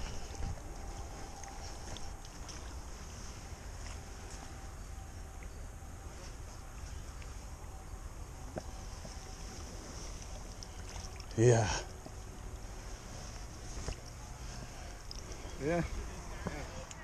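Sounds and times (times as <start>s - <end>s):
wind rumble on microphone: 0.0s - 6.0s.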